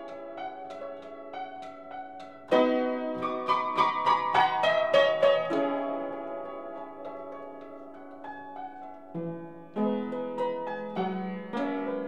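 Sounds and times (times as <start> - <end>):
upright piano playing: 0.0 - 12.0.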